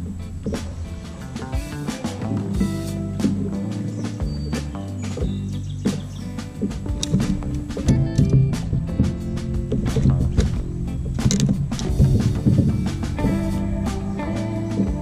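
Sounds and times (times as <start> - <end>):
drum beat: 0.0 - 15.0
held low music notes: 0.0 - 15.0.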